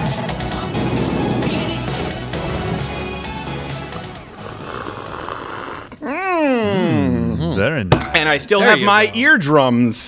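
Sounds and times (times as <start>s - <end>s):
theme music: 0.0s - 4.6s.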